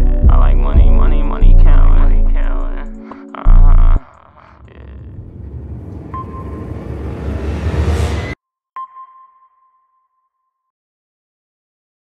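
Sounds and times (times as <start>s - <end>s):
low rumbling whoosh: 3.6s - 8.4s.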